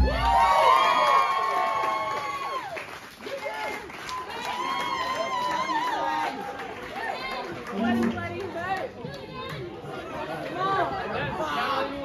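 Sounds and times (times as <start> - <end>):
crowd chatter: 4.9 - 12.0
live song: 7.7 - 8.9.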